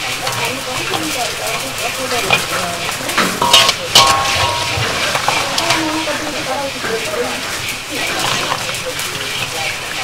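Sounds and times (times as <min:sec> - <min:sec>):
metal ladle scraping candy in wok: 0:00.0 - 0:10.0
pan sizzling: 0:00.0 - 0:10.0.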